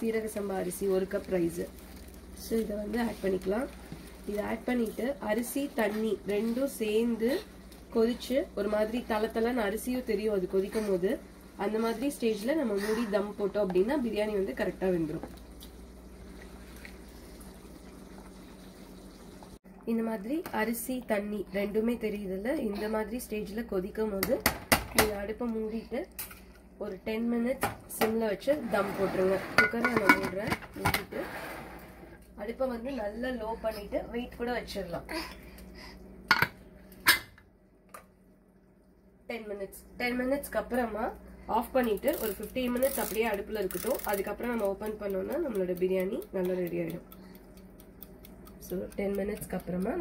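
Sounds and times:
kitchen timer ticking: 41.8 - 50.0.

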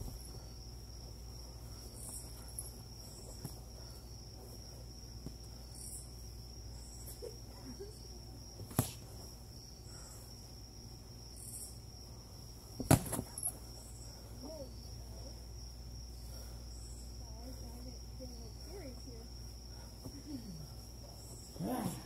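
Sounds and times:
crickets trilling: 0.0 - 22.0
sharp thud: 8.6 - 9.0, 12.8 - 13.4.

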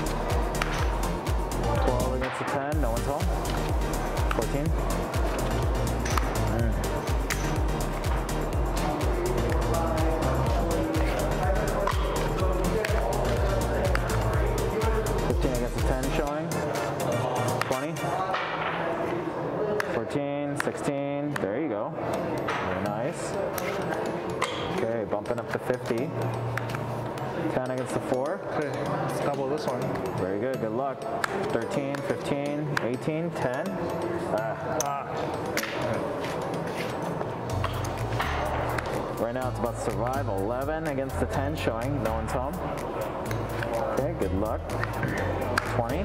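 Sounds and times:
background music with bass beat: 0.0 - 18.1, 35.4 - 46.0.

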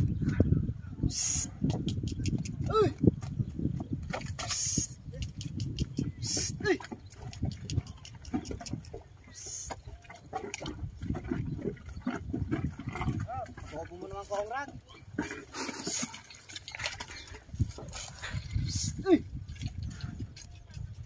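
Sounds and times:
hooves and sled squelching in mud: 0.0 - 21.0.

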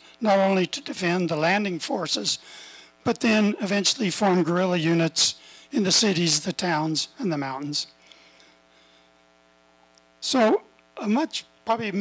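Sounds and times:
faint electrical mains hum: 0.0 - 12.0.

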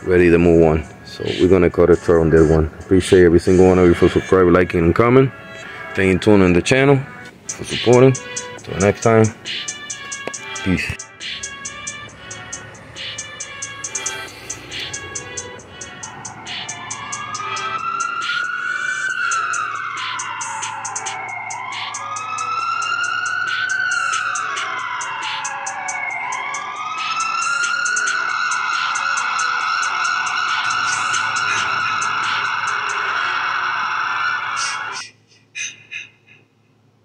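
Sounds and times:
siren wailing: 0.0 - 35.0
music with steady beat: 7.3 - 33.2.

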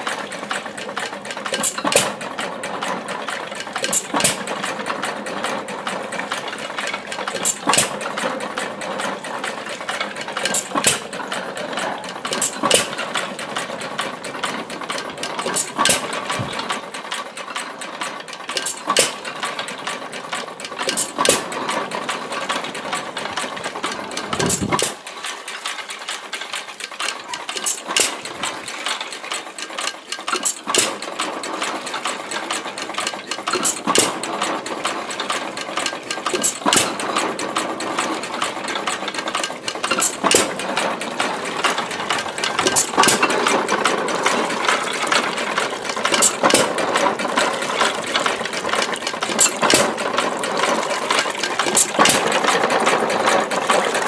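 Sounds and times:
pump drive clatter: 0.0 - 54.0.

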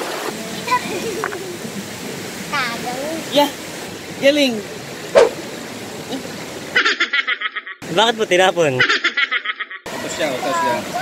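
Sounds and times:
river water rushing over rocks: 0.0 - 6.8, 9.9 - 11.0
short sharp yelp: 5.2 - 5.4.

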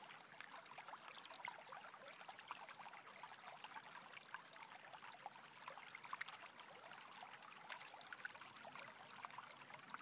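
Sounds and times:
faint stream running over rocks: 0.0 - 10.0.

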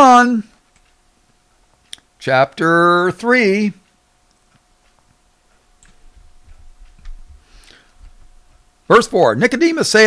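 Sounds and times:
faint steady hum: 0.0 - 10.0
soft low thumps: 3.9 - 8.9.

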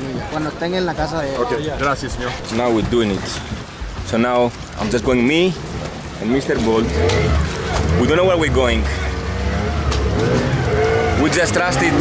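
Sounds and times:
outboard boat motor running: 5.6 - 12.0.

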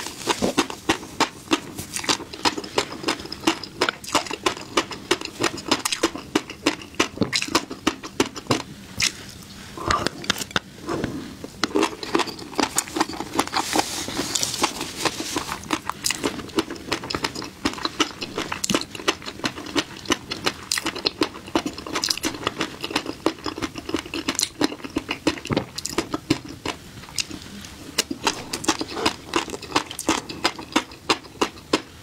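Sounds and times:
chewing fish roe popping: 0.0 - 10.7, 11.4 - 32.0.

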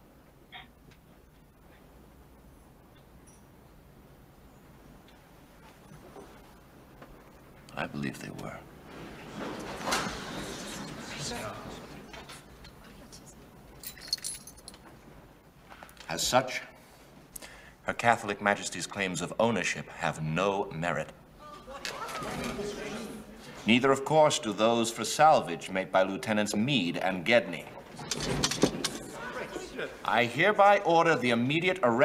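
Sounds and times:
metallic jingle: 13.7 - 14.8
crowd murmuring: 28.8 - 30.1
judge speaking: 28.9 - 32.0.

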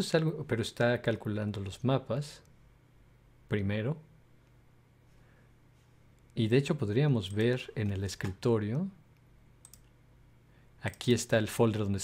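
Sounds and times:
low steady hum: 0.0 - 12.0
computer mouse clicks: 9.1 - 10.0.

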